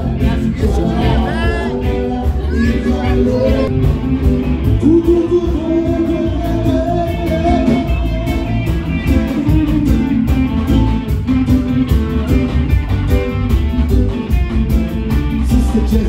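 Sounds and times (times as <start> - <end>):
live band with electric guitars: 0.0 - 16.0.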